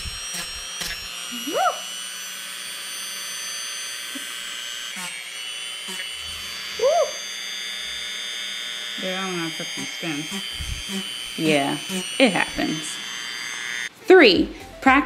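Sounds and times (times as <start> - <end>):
rotary tool sanding foam: 0.0 - 14.0
person yelping: 1.4 - 1.9.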